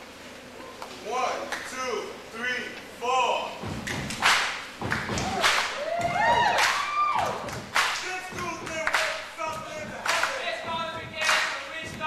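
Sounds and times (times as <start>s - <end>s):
loud thumps: 3.5s - 6.6s, 7.3s - 12.0s.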